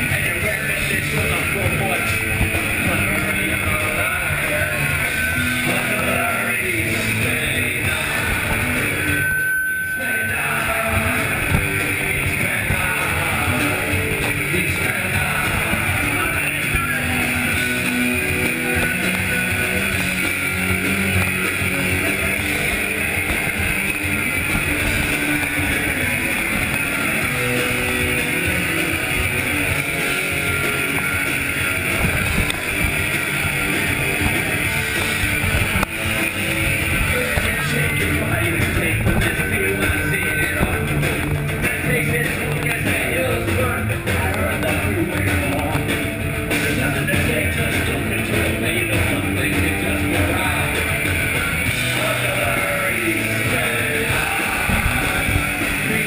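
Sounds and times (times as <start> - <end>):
punk rock band playing live: 0.0 - 56.0.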